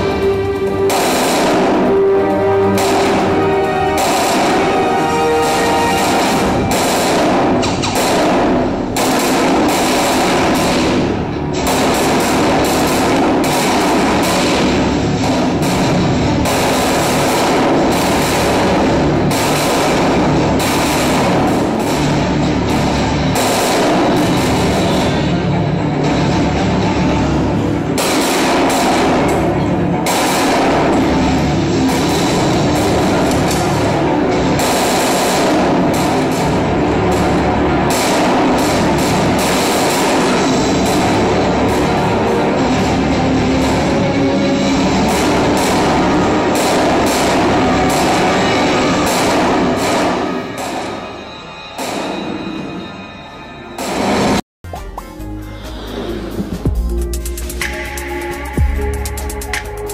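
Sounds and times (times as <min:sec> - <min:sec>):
film soundtrack music: 0:00.0 - 0:59.9
gunfire sound effects: 0:00.8 - 0:25.3, 0:28.0 - 0:51.1.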